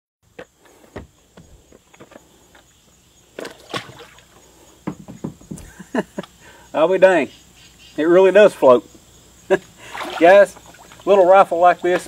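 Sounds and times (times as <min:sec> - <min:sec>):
rifle knocking against plastic kayak: 0:04.8 - 0:05.7
person laughing: 0:05.6 - 0:06.4.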